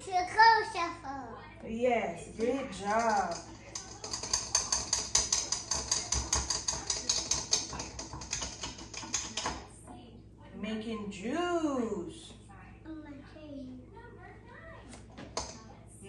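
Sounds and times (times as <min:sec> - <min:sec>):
utensil stirring in metal bowl: 0:02.2 - 0:09.7.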